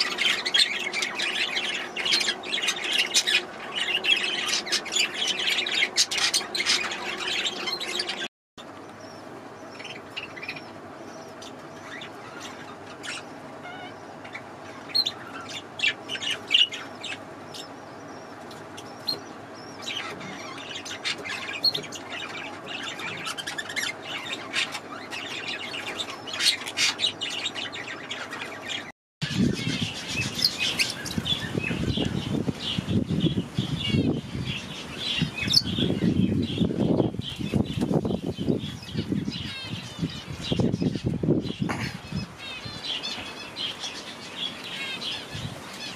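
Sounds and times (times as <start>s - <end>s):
parakeets chirping and twittering: 0.0s - 45.9s.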